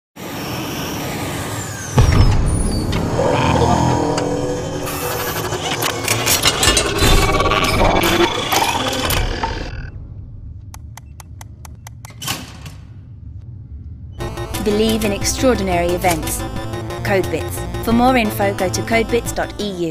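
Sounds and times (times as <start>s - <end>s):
mechanical whirring and clanking: 0.2s - 11.2s.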